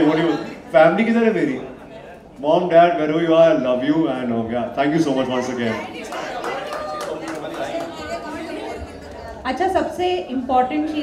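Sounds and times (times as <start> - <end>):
man speaking into a microphone: 0.0 - 5.9
people chattering: 0.0 - 11.0.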